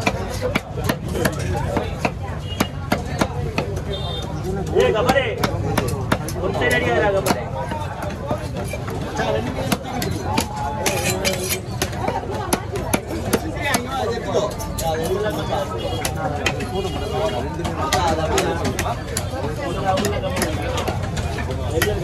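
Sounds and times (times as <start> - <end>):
knife chopping fish on wood: 0.0 - 3.9, 4.8 - 9.0, 9.6 - 14.2, 17.6 - 22.0
people talking: 0.0 - 22.0.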